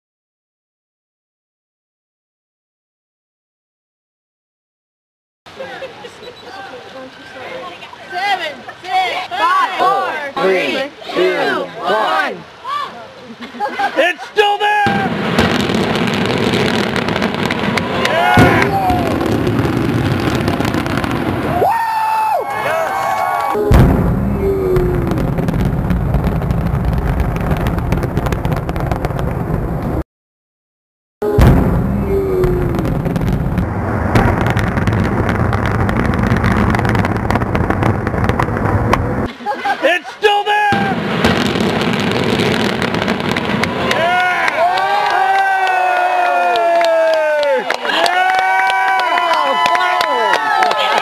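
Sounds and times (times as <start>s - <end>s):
spectators shouting: 8.2s - 13.0s, 13.8s - 15.3s, 17.4s - 20.0s, 20.6s - 25.5s, 39.5s - 41.1s, 43.4s - 51.0s
demolition explosions: 14.9s - 21.6s, 23.6s - 30.0s, 31.2s - 39.3s, 40.7s - 44.4s
crackling rumble: 23.2s - 30.0s, 31.3s - 39.3s.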